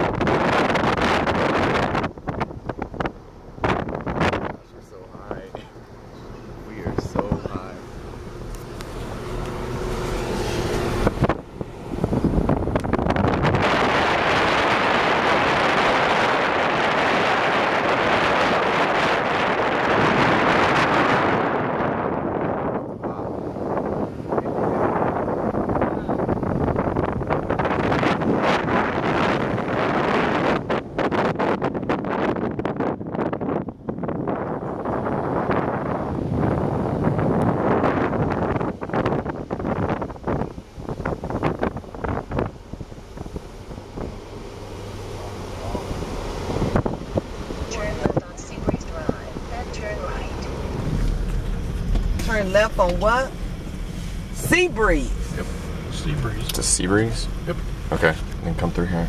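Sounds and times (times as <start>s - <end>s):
wind buffeting microphone: 0.0s - 58.8s.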